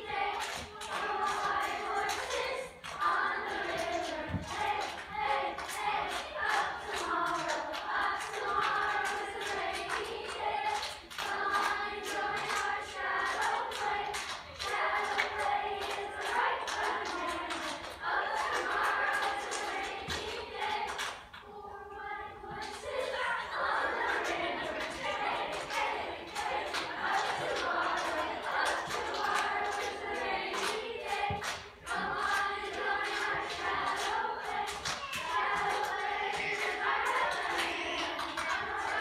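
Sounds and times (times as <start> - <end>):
choir singing a cappella: 0.0 - 39.0
hand-clapping rhythm: 0.0 - 39.0.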